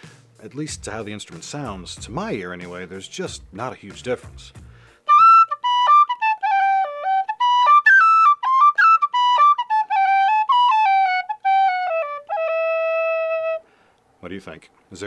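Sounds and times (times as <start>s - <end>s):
tin whistle melody: 5.0s - 13.7s.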